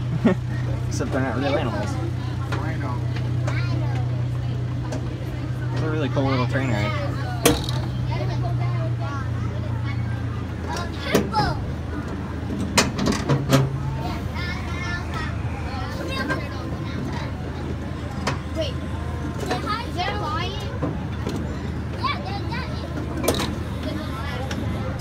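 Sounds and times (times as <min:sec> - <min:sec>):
knocks and clanks of cars: 0:00.0 - 0:06.2, 0:07.2 - 0:08.8, 0:09.9 - 0:15.4, 0:16.0 - 0:25.0
ride train engine drone: 0:00.0 - 0:25.0.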